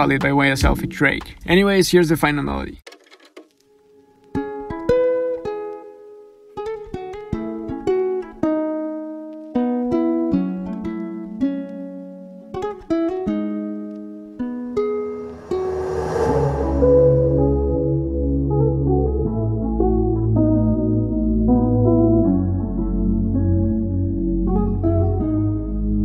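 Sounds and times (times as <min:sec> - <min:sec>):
fingerstyle nylon-string guitar: 0:03.0 - 0:15.2
hissing swell: 0:14.9 - 0:18.4
deep bass: 0:15.1 - 0:19.7.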